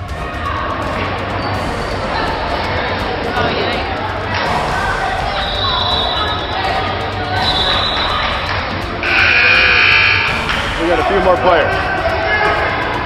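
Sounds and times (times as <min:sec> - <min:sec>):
echoing crowd chatter: 0:00.0 - 0:13.0
loud steady tone: 0:03.4 - 0:10.9.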